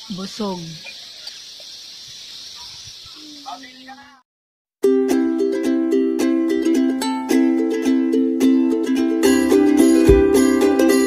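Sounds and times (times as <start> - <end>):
insects chirping: 0.0 - 4.2.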